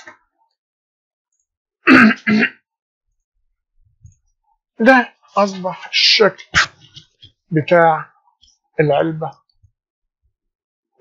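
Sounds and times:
man clearing his throat: 0:01.8 - 0:02.6.

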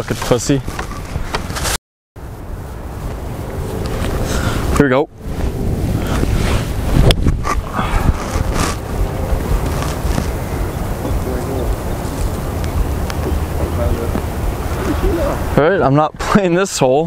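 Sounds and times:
wind buffeting microphone: 0:02.2 - 0:16.5.

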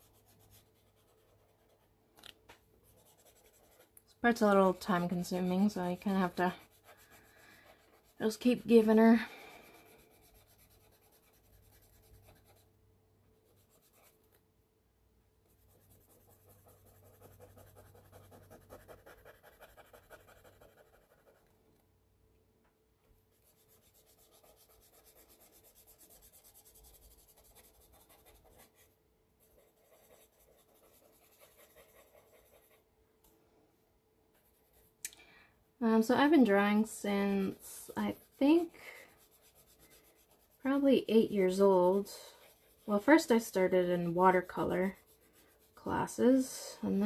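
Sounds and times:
cotton swab rubbing on paper: 0:00.0 - 0:01.9, 0:02.8 - 0:12.7, 0:13.4 - 0:14.4, 0:15.5 - 0:21.5, 0:23.3 - 0:32.8, 0:36.3 - 0:46.8.

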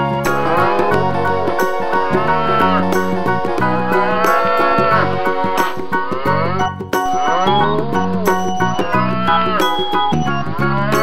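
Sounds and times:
music with steady beat: 0:00.0 - 0:11.0
cow mooing: 0:00.2 - 0:11.0.

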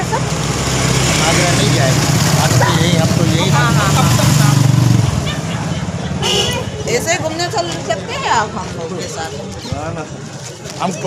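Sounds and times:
vehicle engine running: 0:00.0 - 0:07.4.

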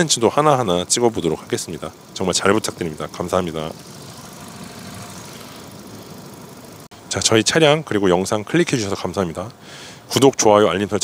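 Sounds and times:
car engine idling: 0:00.0 - 0:06.9.

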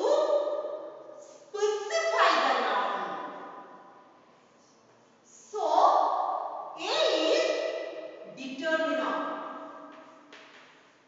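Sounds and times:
woman's voice: 0:01.6 - 0:03.3.

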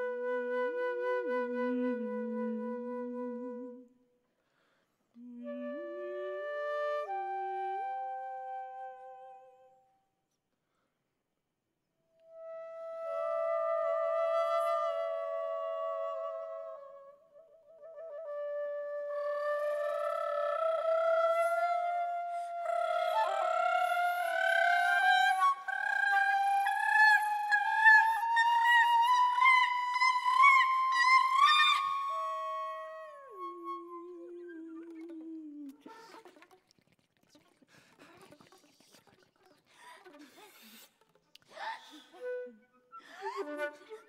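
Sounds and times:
concert flute: 0:00.0 - 0:04.1, 0:05.2 - 0:10.0, 0:12.1 - 0:36.6, 0:41.6 - 0:44.0
woman singing sustained tones: 0:01.2 - 0:03.8, 0:05.2 - 0:09.8, 0:19.3 - 0:35.9.

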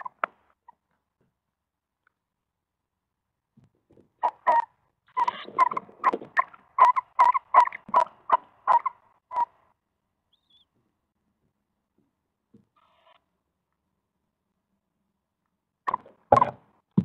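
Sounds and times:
owl calling: 0:04.2 - 0:09.6, 0:10.3 - 0:10.7, 0:12.8 - 0:13.2.

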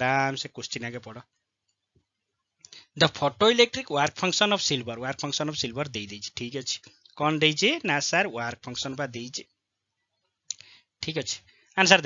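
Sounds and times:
person speaking: 0:00.0 - 0:01.4, 0:02.7 - 0:09.6, 0:10.5 - 0:12.0.

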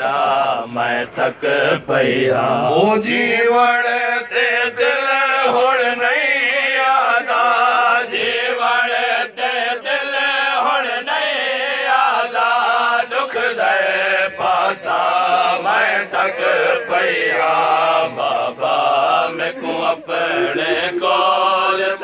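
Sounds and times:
man singing into a microphone: 0:00.0 - 0:08.7
men chanting: 0:00.0 - 0:22.0.

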